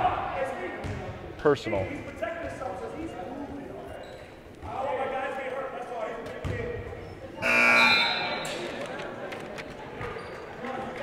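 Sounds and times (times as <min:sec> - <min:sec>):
basketball bouncing: 0:00.8 - 0:01.0
scoreboard horn buzzing: 0:07.4 - 0:08.4.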